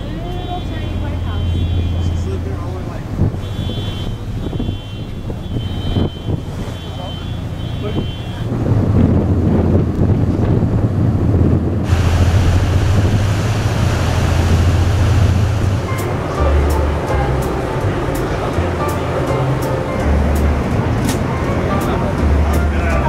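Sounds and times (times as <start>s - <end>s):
wind buffeting microphone: 0.0s - 23.0s
steady low rumble: 8.3s - 23.0s
hiss of wind and sea: 11.8s - 22.8s.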